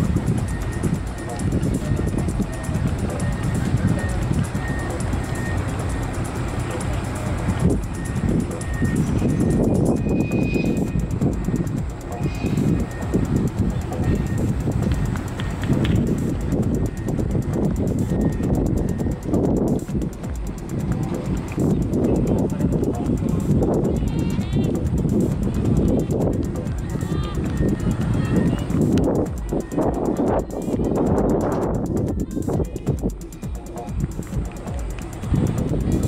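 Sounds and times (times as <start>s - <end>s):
faint distant voices: 0.0s - 36.0s
wind buffeting microphone: 0.0s - 36.0s
short high beep: 0.4s - 6.2s, 7.9s - 11.6s.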